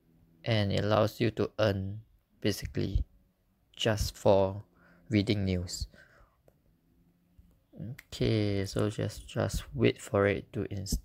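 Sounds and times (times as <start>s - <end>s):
man talking: 0.4s - 3.1s, 3.7s - 6.0s, 7.8s - 11.0s.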